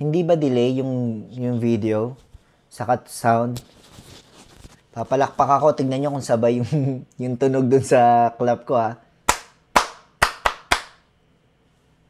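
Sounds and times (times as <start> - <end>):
man clapping hands: 9.3 - 11.0.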